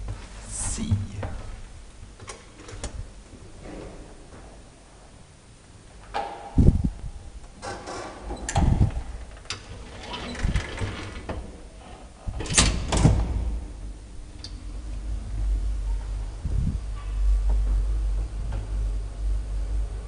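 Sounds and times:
elevator running hum: 0.0 - 20.0
elevator doors banging and clattering: 7.5 - 20.0.

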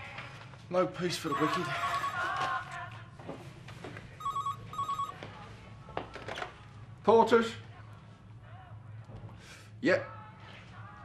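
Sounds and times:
telephone ringing with warbling trills: 1.2 - 2.4, 4.2 - 5.2.

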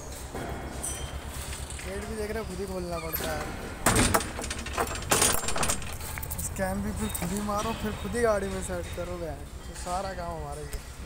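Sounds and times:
man speaking: 1.8 - 3.6, 6.2 - 11.0
rattling jangling handling noise: 3.9 - 10.6.

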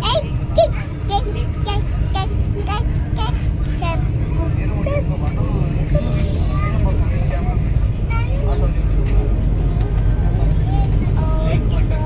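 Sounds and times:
train rumbling at speed: 0.0 - 12.0.

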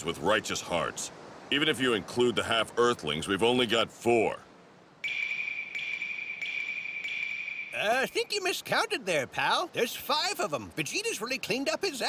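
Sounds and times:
steady high-pitched tone: 5.0 - 8.4.

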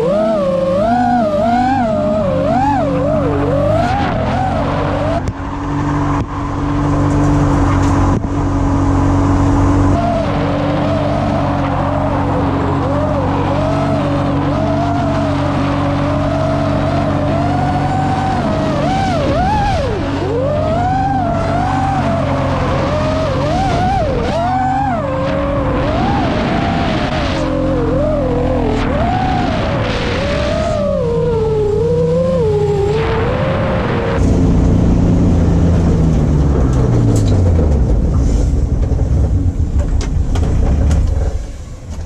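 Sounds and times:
car engine revving: 0.0 - 42.0
drone motors whining: 0.0 - 42.0
tyres skidding: 0.0 - 42.0.

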